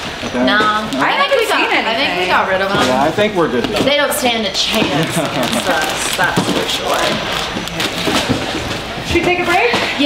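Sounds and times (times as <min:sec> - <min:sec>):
low overlapping voices: 0:00.0 - 0:10.0
people laughing: 0:04.8 - 0:06.3.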